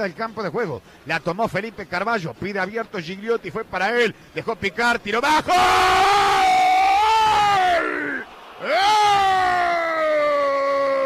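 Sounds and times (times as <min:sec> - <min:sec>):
quick breath: 0:00.8 - 0:01.1, 0:04.2 - 0:04.4
commentator's long held cry: 0:05.6 - 0:11.0.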